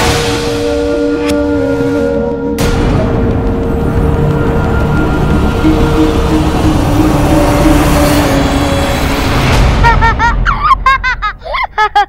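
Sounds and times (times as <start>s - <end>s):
dramatic orchestral score: 0.0s - 11.4s.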